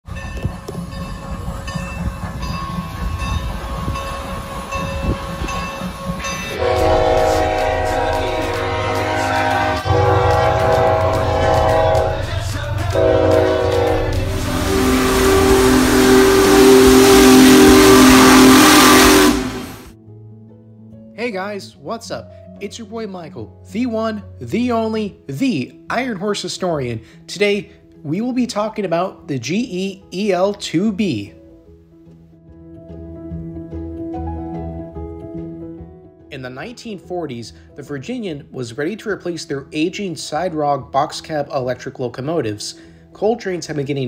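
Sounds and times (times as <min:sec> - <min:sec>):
passing train rumble: 0:00.1 - 0:20.0
locomotive air horn blasts: 0:04.5 - 0:19.9.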